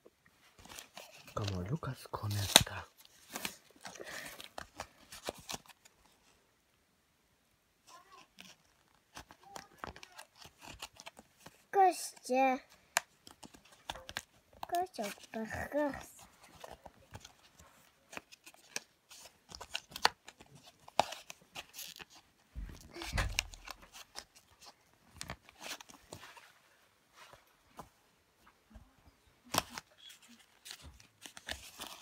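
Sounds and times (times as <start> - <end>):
plastic packaging crinkling: 0.6 - 6.2, 16.4 - 26.4, 29.5 - 32.0.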